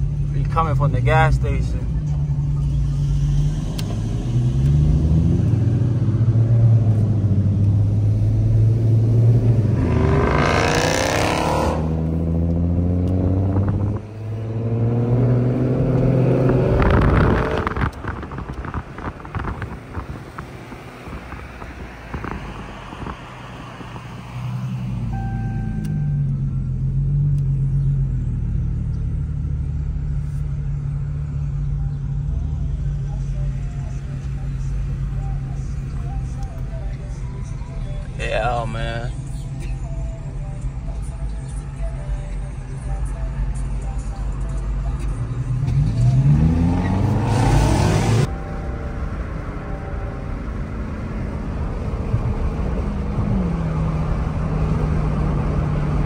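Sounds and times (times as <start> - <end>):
car engine revving: 0.0 - 56.0
road noise: 0.0 - 56.0.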